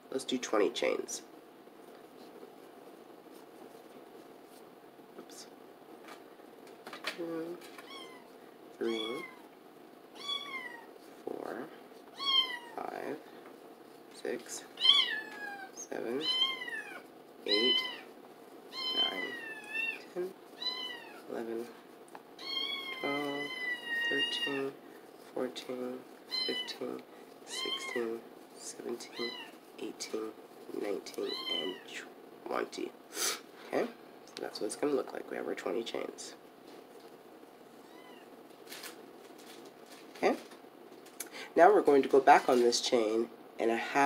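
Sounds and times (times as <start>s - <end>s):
soft rustle: 1.7s - 6.6s, 7.4s - 32.0s, 41.8s - 43.0s
cat meowing: 7.8s - 9.5s, 10.2s - 11.0s, 12.2s - 12.8s, 14.8s - 18.1s, 18.7s - 21.2s, 22.4s - 24.7s, 26.3s - 26.8s, 27.5s - 28.1s, 29.1s - 29.6s, 31.2s - 32.0s, 37.8s - 38.3s.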